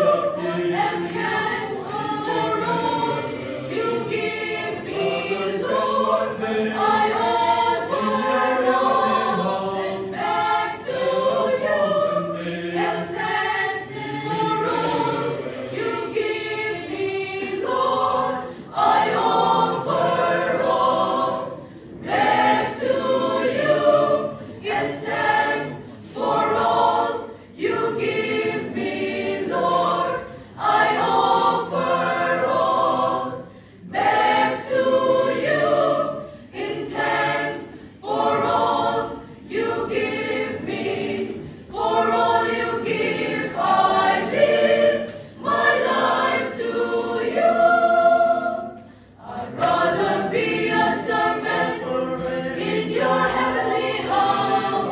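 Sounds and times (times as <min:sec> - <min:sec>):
mixed choir singing a cappella: 0:00.0 - 0:54.9.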